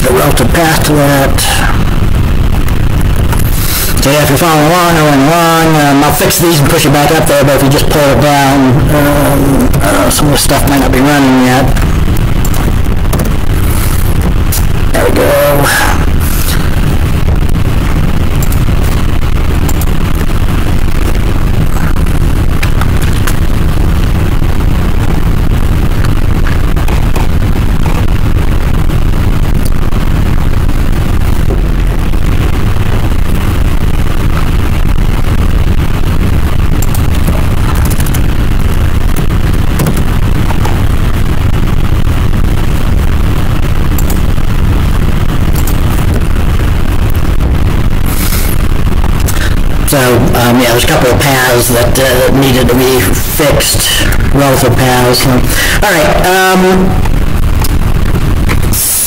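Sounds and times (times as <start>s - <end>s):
microphone rumbling and hissing: 0.0s - 59.0s.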